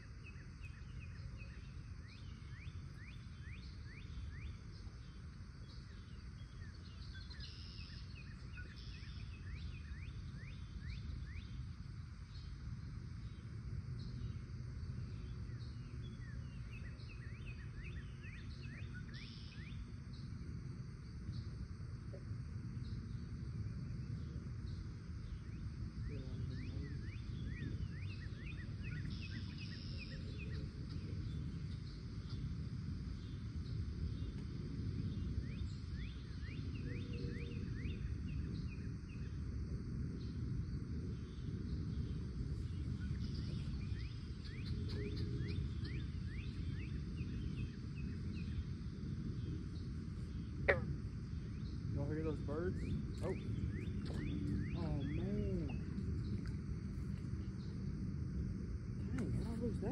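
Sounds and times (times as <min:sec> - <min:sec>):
low steady rumble: 0:00.0 - 0:59.9
small birds chirping: 0:41.2 - 0:57.9.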